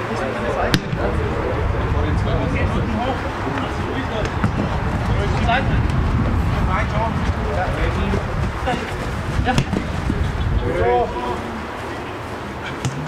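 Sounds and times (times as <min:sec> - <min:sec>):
steady low rumble: 0:00.6 - 0:11.8
ball being kicked: 0:00.7 - 0:01.2, 0:08.7 - 0:10.2.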